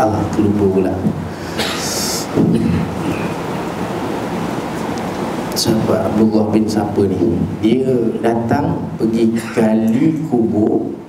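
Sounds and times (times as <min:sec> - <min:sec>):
hiss and rumble background noise: 0:00.0 - 0:11.0.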